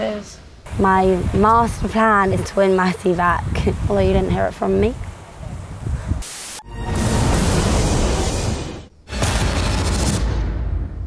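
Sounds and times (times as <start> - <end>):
wind on microphone: 0.6 - 6.3
short burst of hiss: 6.2 - 6.6.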